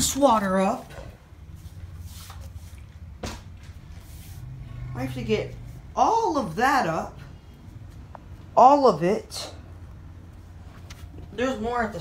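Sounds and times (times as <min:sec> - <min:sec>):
low steady hum: 0:00.0 - 0:12.0
soft brushing sounds: 0:01.2 - 0:06.0.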